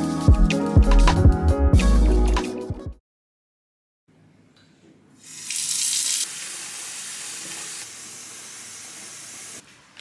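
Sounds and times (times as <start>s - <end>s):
water running from bathtub tap: 5.2s - 9.6s.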